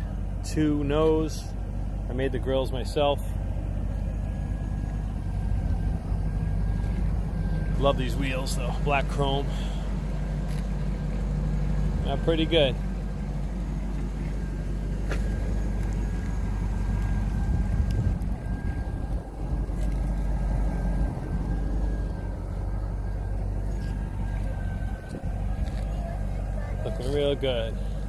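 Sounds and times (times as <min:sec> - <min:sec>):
car engine idling: 0:00.0 - 0:28.0.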